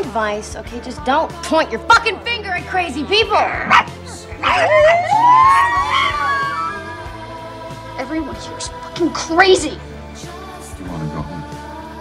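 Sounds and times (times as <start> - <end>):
background music: 0.0 - 12.0
long howling cry: 4.4 - 7.2.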